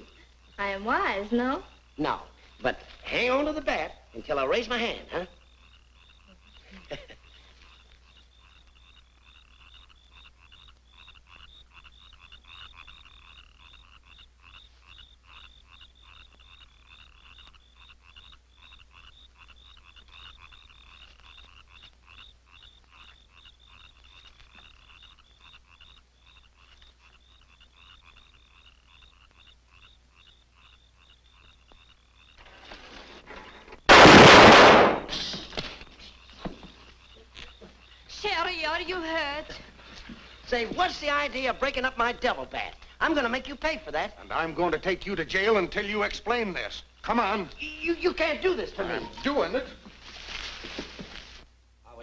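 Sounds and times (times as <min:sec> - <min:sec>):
creatures chirping at night: 0:00.0 - 0:32.5, 0:34.9 - 0:39.7, 0:40.3 - 0:49.8
loud blast: 0:33.9 - 0:35.4.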